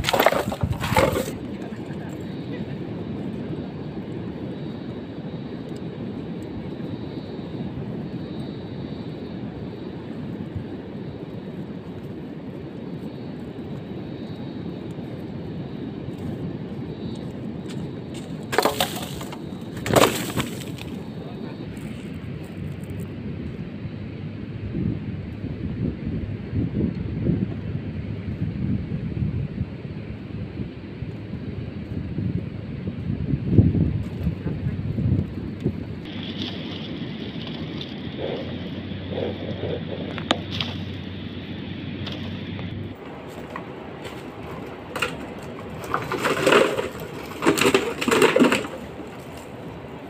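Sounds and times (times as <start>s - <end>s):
wind buffeting microphone: 0.0s - 50.0s
dove cooing: 36.1s - 50.0s.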